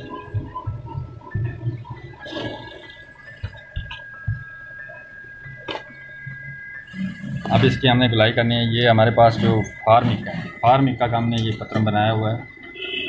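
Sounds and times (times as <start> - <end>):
faint steady high tone: 0.0 - 13.0.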